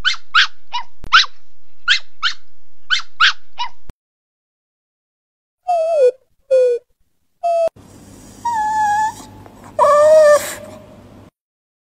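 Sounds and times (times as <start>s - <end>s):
puppy whimpering: 5.7s - 6.8s, 7.4s - 7.8s, 8.4s - 11.0s.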